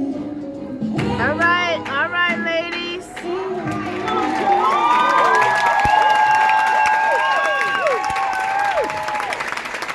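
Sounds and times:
audience cheering and applauding: 3.2 - 9.9
high-pitched whoops: 4.3 - 9.4.

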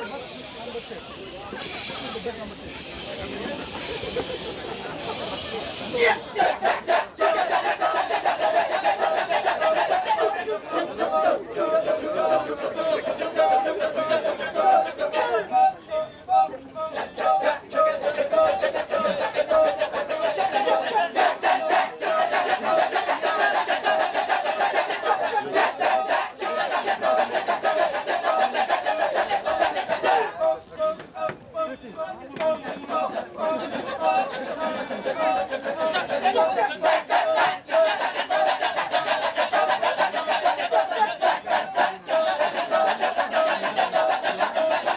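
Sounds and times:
men chanting rhythmically: 5.9 - 44.9.

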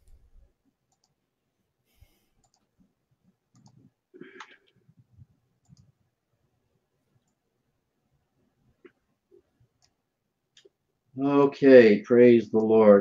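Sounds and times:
faint clicks: 0.9 - 1.2, 2.4 - 2.8, 3.5 - 4.8, 5.6 - 5.9.

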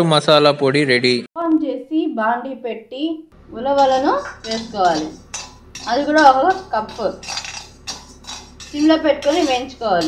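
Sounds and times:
spatula scraping seeds in a pan: 3.7 - 10.0
spatula clinking against pan: 3.8 - 10.0.

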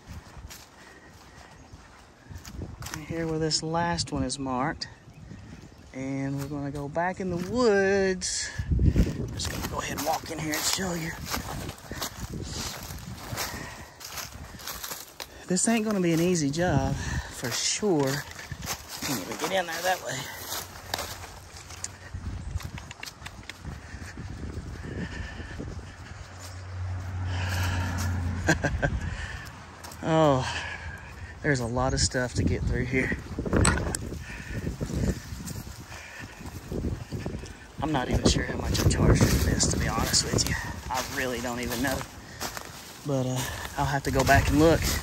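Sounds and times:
footsteps through dry leaves: 0.0 - 45.0
twigs and leaves rustling: 0.0 - 45.0
wind rumbling on microphone: 0.0 - 45.0.

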